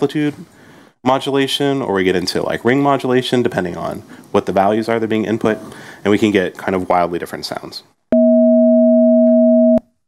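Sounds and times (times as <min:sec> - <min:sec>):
ring-modulated sine tone: 0:08.2 - 0:09.8.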